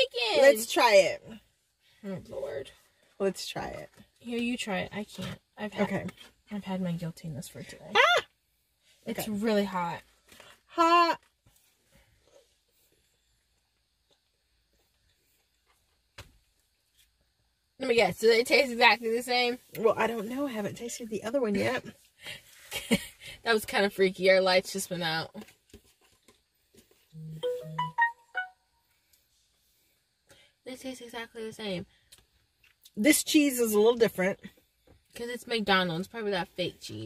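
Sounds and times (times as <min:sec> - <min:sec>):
low electronic buzzes: 0:27.1 - 0:28.8
bell-like chime notes: 0:27.4 - 0:28.5.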